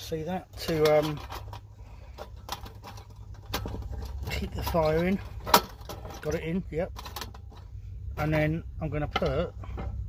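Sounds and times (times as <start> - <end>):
metal panels clicking and tapping: 0.0 - 8.4
low steady rumble: 0.0 - 10.0.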